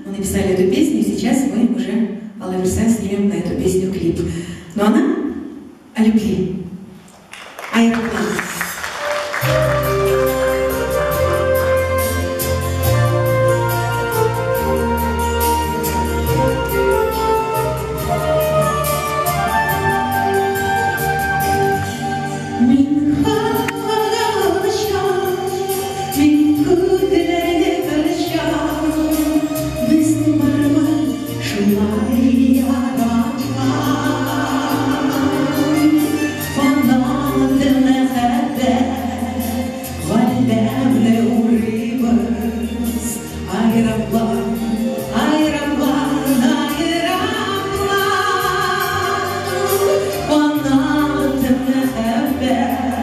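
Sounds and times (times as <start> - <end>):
instrumental accompaniment: 7.8 - 53.0
backing music with steady beat: 8.6 - 53.0
woman singing into microphone: 9.5 - 53.0.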